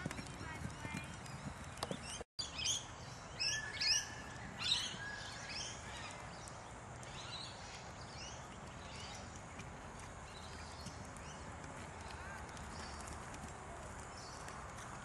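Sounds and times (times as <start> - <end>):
distant voices: 0.0 - 2.2
horse hoofbeats on grass: 0.0 - 2.2, 8.2 - 15.0.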